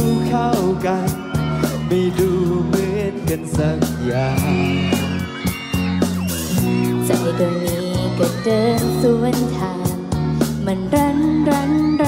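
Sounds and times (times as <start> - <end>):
person singing: 0.0 - 5.3, 7.0 - 12.0
live band playing: 0.0 - 12.0.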